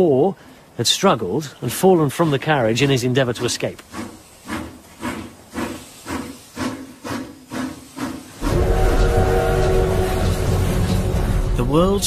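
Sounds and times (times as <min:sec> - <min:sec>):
steam locomotive chuffing: 0:02.2 - 0:12.0
steam whistle: 0:08.4 - 0:11.3
deep rumble: 0:08.4 - 0:12.0.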